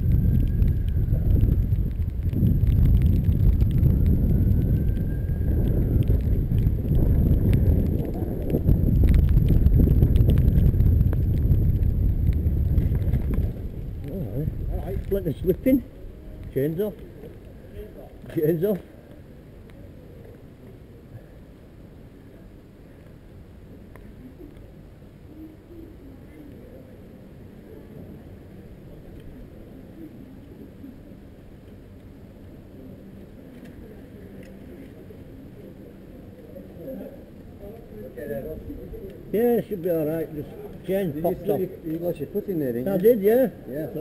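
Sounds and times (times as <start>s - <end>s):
faint voices: 0.0s - 11.0s, 11.7s - 44.0s
low outdoor rumble: 0.0s - 44.0s.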